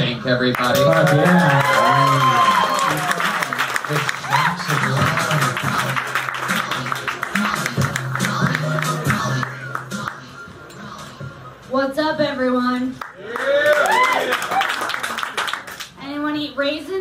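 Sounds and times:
music playing in a room: 0.0s - 15.6s
audience applause: 0.6s - 9.9s, 13.0s - 15.9s.

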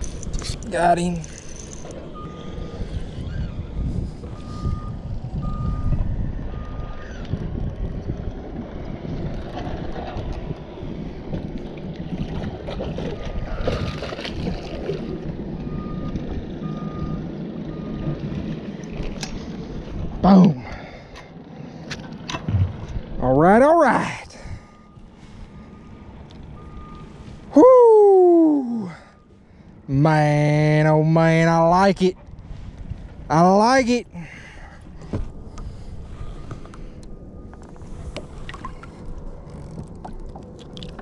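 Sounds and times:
wind: 0.0s - 41.0s
water: 6.7s - 17.1s, 18.0s - 32.8s, 33.4s - 41.0s
person exclaiming: 20.2s - 20.6s, 27.5s - 29.0s.

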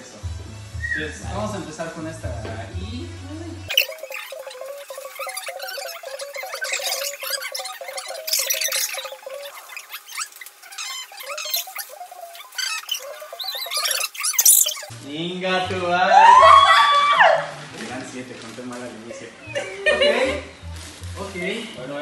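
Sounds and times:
background music: 0.0s - 18.2s, 19.0s - 22.0s
paper bags rustling and crinkling: 17.7s - 19.1s.

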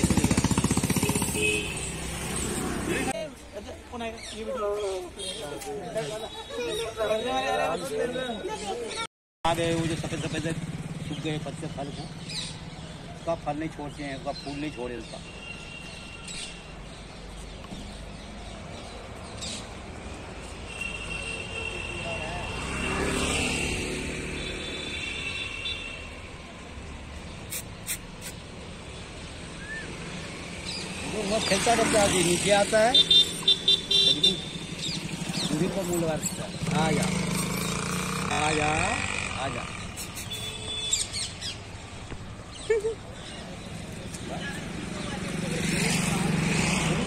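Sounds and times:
vehicle passing by: 0.0s - 3.2s, 22.2s - 24.9s, 29.0s - 33.0s, 34.1s - 40.3s, 43.4s - 47.0s
vehicle engine approaching: 9.5s - 13.1s, 34.2s - 40.2s, 43.4s - 47.0s.

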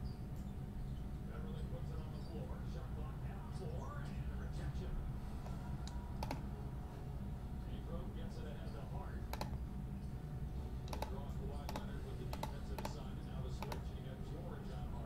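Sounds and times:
low steady hum: 0.0s - 15.0s
computer keyboard key clicks: 6.2s - 6.4s, 9.3s - 9.6s, 10.9s - 13.0s, 13.6s - 13.9s.

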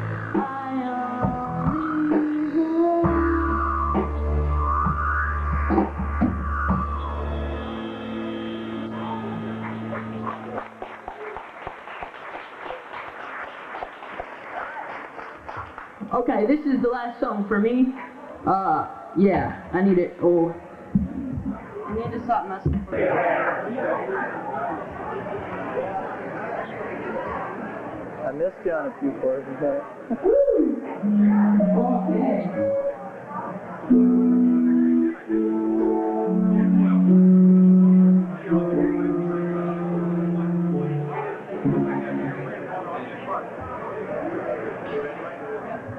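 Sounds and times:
audience chatter: 0.0s - 45.9s
audience whooping: 6.4s - 15.8s
audience clapping: 9.4s - 16.3s
electric piano slow chords: 31.0s - 33.1s, 33.8s - 42.7s.

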